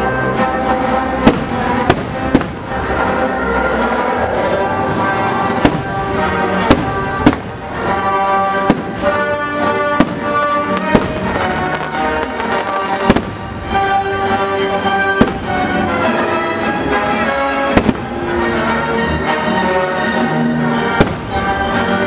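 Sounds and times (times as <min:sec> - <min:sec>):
music soundtrack: 0:00.0 - 0:22.0
fireworks bursting: 0:01.2 - 0:03.2, 0:04.3 - 0:16.2, 0:16.8 - 0:18.5, 0:20.9 - 0:22.0.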